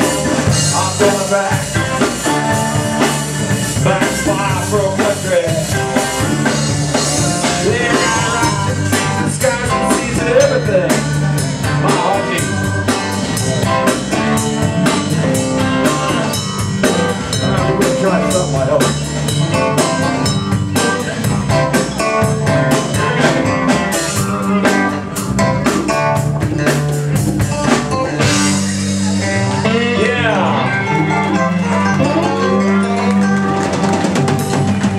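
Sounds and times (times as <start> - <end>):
drum beat: 0.0 - 30.2, 32.8 - 34.9
bass: 0.0 - 34.9
electric guitars: 0.0 - 34.9.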